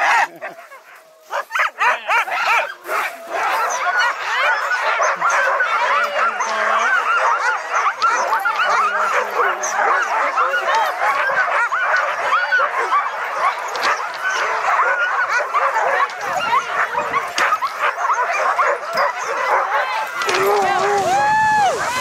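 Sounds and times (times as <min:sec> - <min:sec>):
sled dogs barking and yipping: 0:00.0 - 0:22.0.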